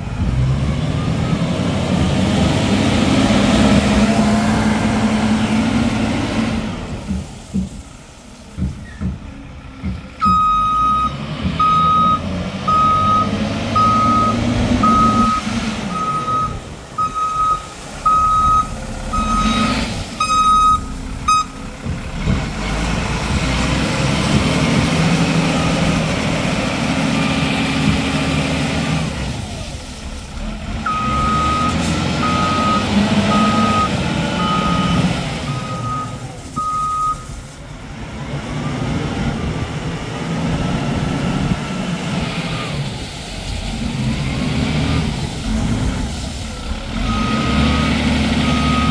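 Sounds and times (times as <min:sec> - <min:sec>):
forklift engine running: 0:00.0 - 0:48.9
reversing alarm beeping: 0:10.2 - 0:21.6, 0:30.9 - 0:37.3, 0:47.1 - 0:48.9.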